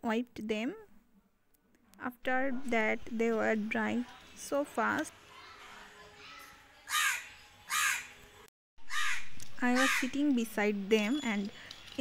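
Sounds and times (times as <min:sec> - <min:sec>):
crow cawing: 0:06.9 - 0:08.2, 0:08.8 - 0:10.1.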